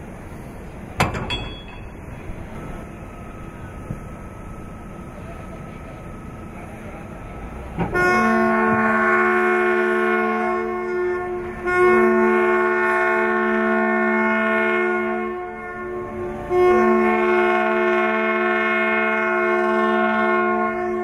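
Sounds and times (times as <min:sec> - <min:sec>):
ship's horn blasts: 0:01.4 - 0:21.0.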